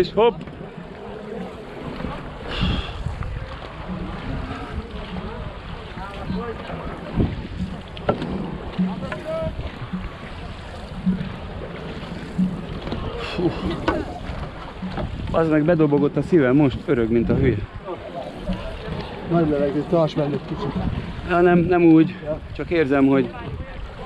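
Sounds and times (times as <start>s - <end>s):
paddles splashing: 0.0s - 24.0s
water rushing along hull: 0.0s - 24.0s
wind buffeting microphone: 0.0s - 24.0s
rhythmic low beat: 3.0s - 20.0s.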